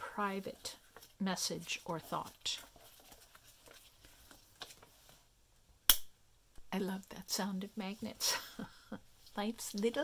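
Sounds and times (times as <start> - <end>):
paper rustling: 0.2 - 5.3.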